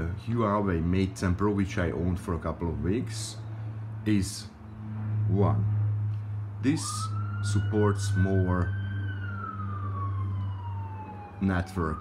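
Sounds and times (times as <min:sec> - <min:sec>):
siren wailing: 0:03.4 - 0:12.0.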